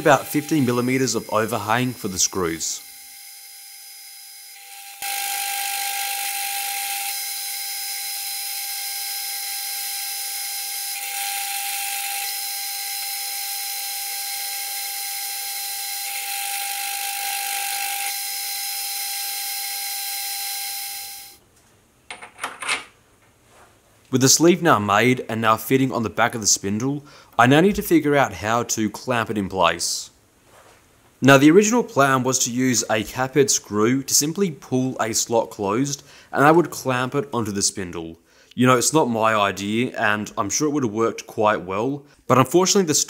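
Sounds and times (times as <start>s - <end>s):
metal lathe whining: 0.0s - 21.4s.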